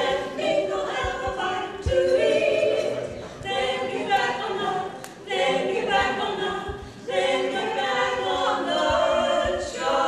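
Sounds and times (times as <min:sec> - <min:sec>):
women singing in close harmony: 0:00.0 - 0:10.0.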